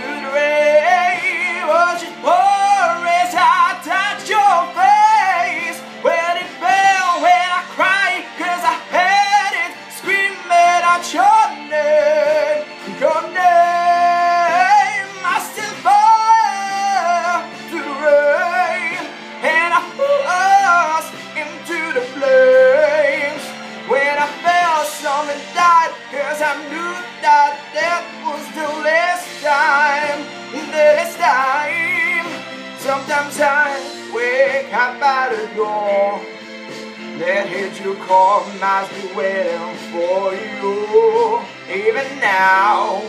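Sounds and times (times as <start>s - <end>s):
man singing wordless runs: 0.0s - 36.2s, 37.2s - 43.0s.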